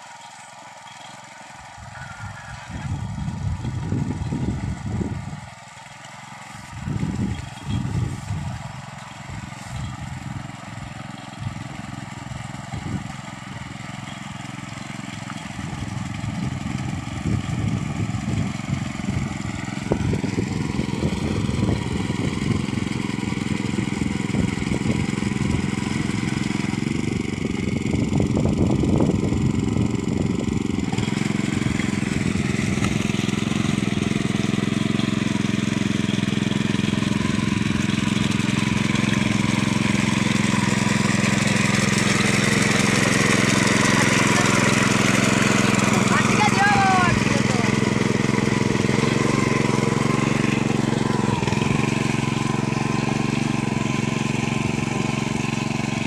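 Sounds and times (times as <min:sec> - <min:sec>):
power tiller engine running: 0:00.0 - 0:56.0.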